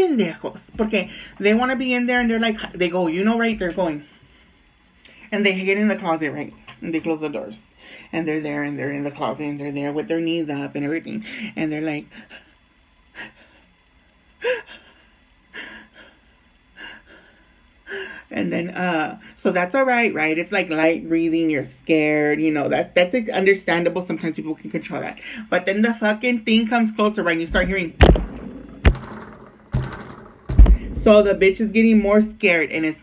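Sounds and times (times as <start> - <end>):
low thump: 27.5 - 31.3
sharp tap: 28.0 - 31.1.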